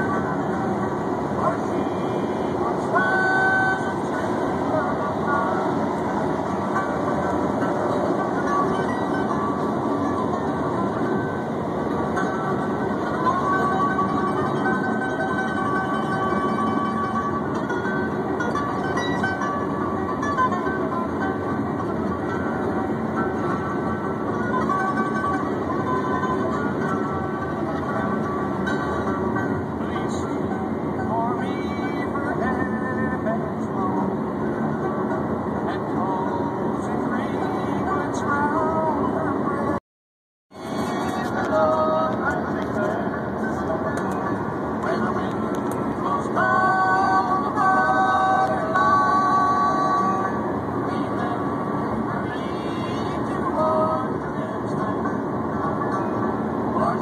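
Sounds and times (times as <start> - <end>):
car road and tyre noise: 0.0 - 39.8, 40.5 - 57.0.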